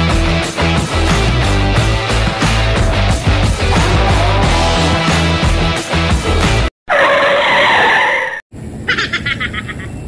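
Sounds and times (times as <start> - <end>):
rock music: 0.0 - 6.7
outdoor ambience: 6.9 - 10.0.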